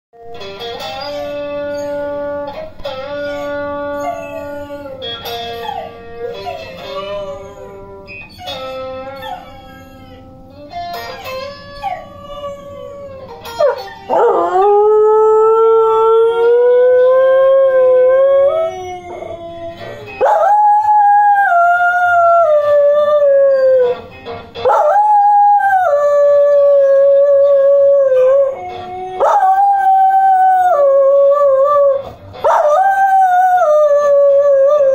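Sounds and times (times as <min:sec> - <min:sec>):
blues guitar music from tv: 0:00.2 - 0:34.9
dog howling: 0:00.9 - 0:34.9.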